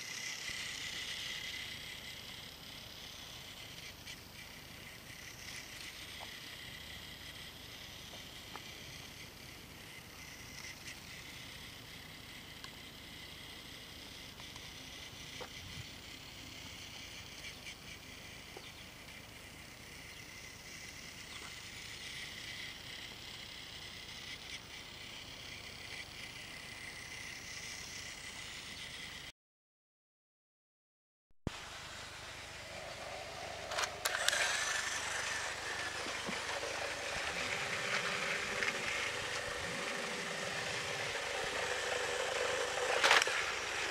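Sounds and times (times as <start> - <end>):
outdoor background noise: 0.0 - 29.3, 31.5 - 43.9
toy train motor whirring: 0.0 - 29.3, 31.5 - 43.9.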